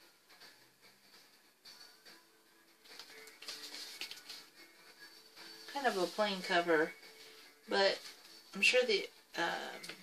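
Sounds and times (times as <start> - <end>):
faint background music: 0.0 - 10.0
cardboard record jacket rustling: 2.9 - 8.7.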